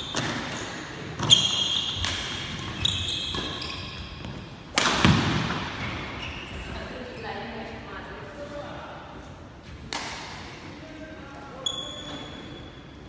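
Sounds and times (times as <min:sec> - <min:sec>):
high squeak: 0:02.8 - 0:04.0, 0:11.6 - 0:12.8.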